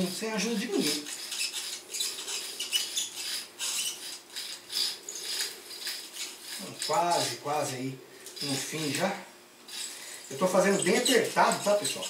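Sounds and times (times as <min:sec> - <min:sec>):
fishing reel being cranked: 0:00.4 - 0:09.1, 0:09.7 - 0:12.0.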